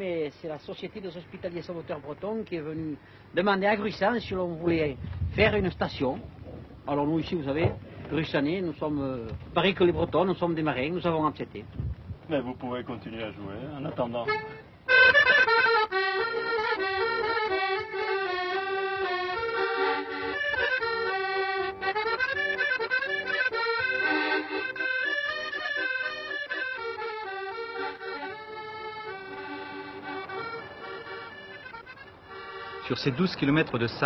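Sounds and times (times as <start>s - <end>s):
accordion melody: 13.2s - 34.0s.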